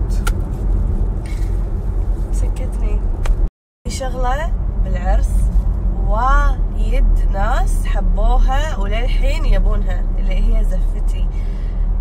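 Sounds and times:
road and engine rumble in car: 0.0s - 12.0s.

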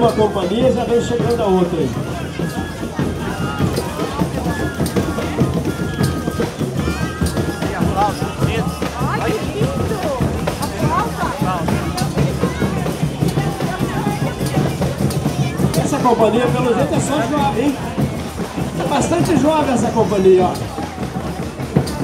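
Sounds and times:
crowd chatter: 0.0s - 22.0s
folk music with drumbeat: 0.0s - 22.0s.

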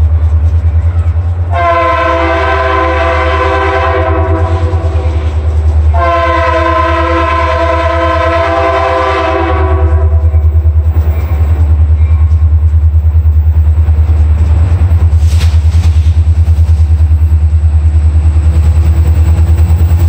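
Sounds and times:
locomotive air horn blasts: 1.5s - 10.4s.

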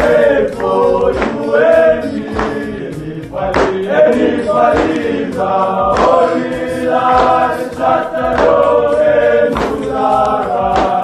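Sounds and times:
men singing in harmony: 0.0s - 11.0s.

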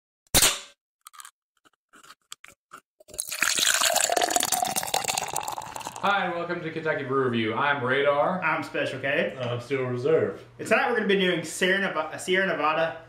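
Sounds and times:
beer pouring and fizzing: 3.1s - 6.1s.

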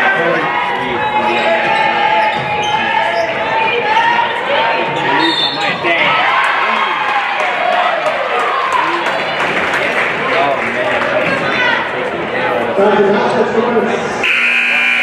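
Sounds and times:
indistinct voices in hall: 0.0s - 15.0s.

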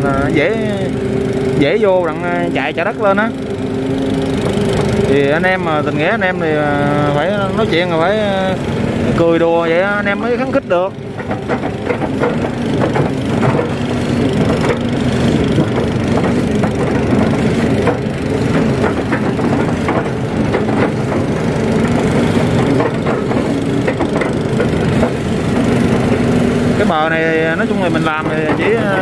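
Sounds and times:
excavator diesel engine running: 0.0s - 29.0s
machine clicks and knocks: 10.5s - 27.0s, 27.6s - 29.0s.

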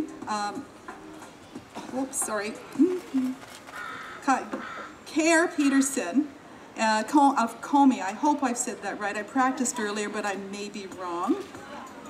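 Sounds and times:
woman making hesitant vocal sounds: 2.6s - 3.4s.

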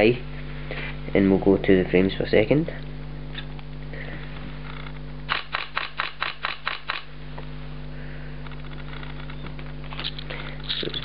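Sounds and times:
camera shutter burst: 5.3s - 7.1s.

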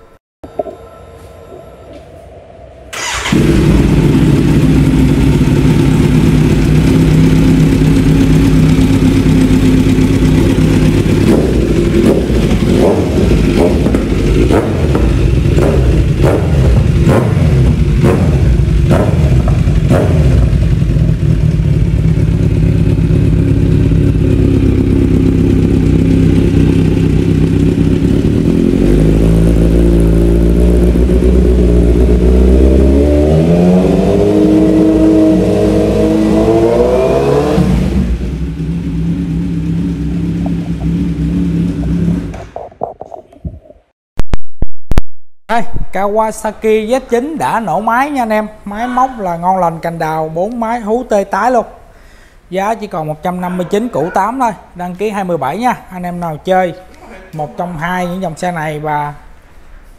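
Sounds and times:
motorcycle throttle blips: 2.9s - 32.8s, 37.5s - 43.6s
motorcycle engine idling: 3.0s - 32.3s, 38.1s - 42.5s.

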